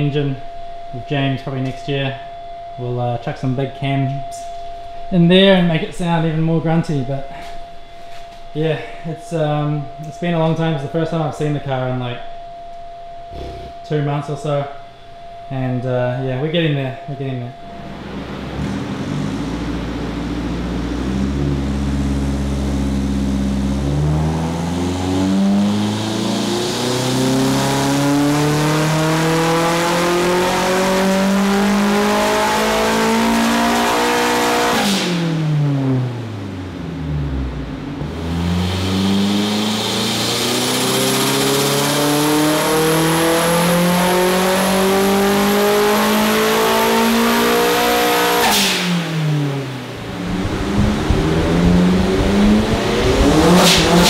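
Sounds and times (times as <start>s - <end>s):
car engine revving: 17.6s - 54.0s.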